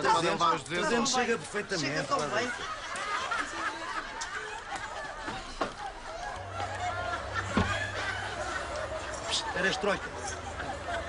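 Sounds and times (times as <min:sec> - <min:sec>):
excited voices shouting and yelping: 0:00.0 - 0:11.0
thump: 0:07.5 - 0:07.9.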